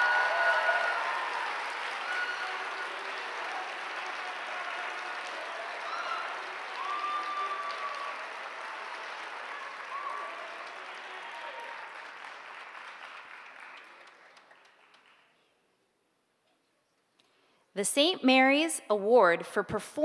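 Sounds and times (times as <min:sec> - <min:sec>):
people cheering: 0:00.0 - 0:15.0
audience applauding: 0:00.0 - 0:15.5.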